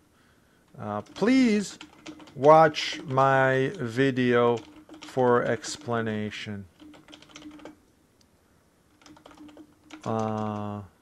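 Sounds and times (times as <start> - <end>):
typing on computer keyboard: 0.7 - 6.1, 6.7 - 7.8, 8.9 - 10.8.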